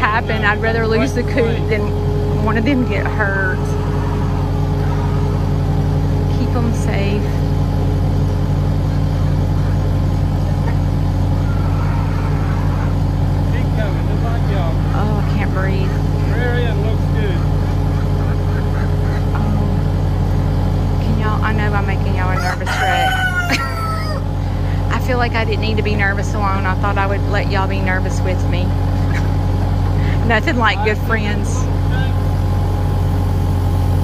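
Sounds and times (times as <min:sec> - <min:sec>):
chickens clucking: 0:00.0 - 0:31.8
diesel engine running: 0:00.0 - 0:34.0
rooster crowing: 0:00.4 - 0:06.2, 0:11.2 - 0:13.5, 0:22.2 - 0:24.6.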